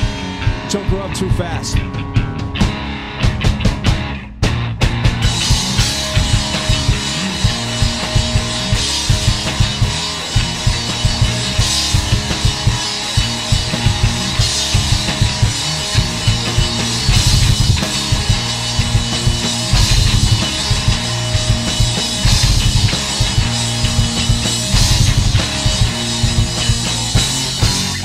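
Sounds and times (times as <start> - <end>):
drum kit beat: 0.0 - 28.0
electric guitar: 0.0 - 28.0.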